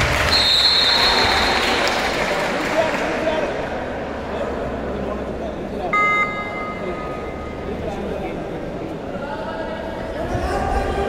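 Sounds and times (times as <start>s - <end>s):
spectator chatter: 0.0s - 11.0s
referee's whistle blast: 0.3s - 1.6s.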